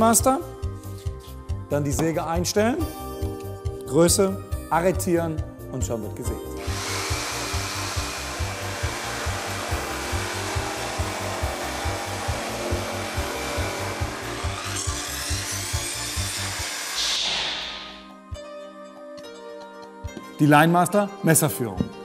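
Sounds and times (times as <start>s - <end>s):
background music with beat: 0.0s - 14.6s, 17.0s - 22.0s
jigsaw cutting wood: 6.6s - 17.8s.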